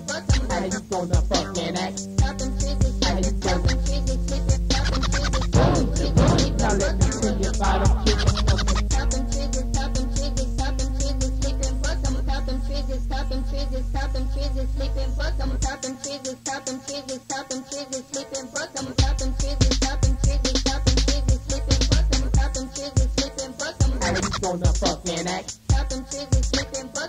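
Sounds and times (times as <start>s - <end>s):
turntable scratching: 0.0s - 12.3s, 15.6s - 27.0s
hip hop beat: 0.0s - 27.0s
heavy kick drums: 2.0s - 9.8s, 19.0s - 23.2s.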